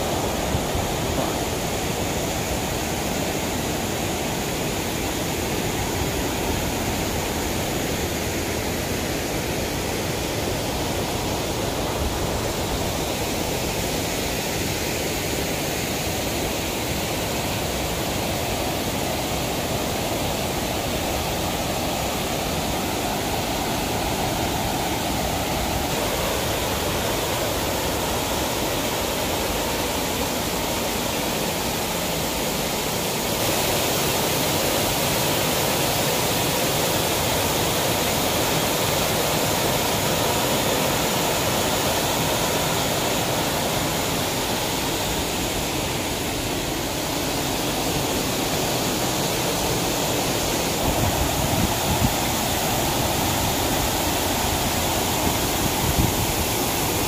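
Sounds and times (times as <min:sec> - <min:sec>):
water rushing over weir: 0:00.0 - 0:57.0.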